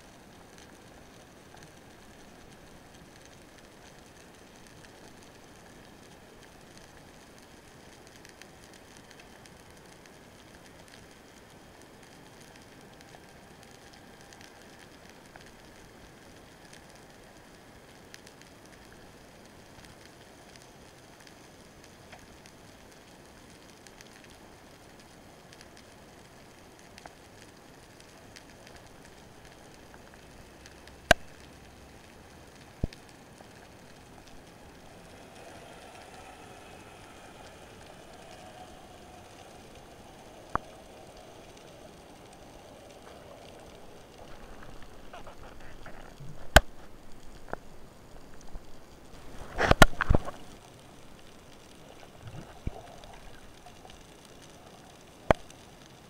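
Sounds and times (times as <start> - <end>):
faint clicks and crackles: 0.0 - 56.0
faint underwater hiss: 0.0 - 56.0.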